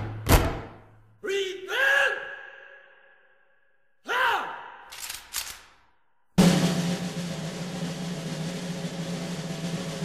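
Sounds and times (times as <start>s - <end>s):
rifle clicks: 4.9s - 5.8s.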